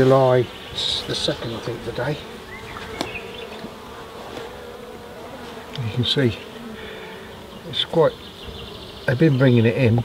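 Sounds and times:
bees buzzing: 0.0 - 10.0.

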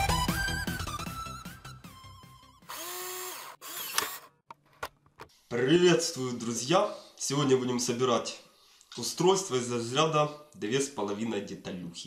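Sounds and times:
small electric motor whirring: 2.6 - 4.4.

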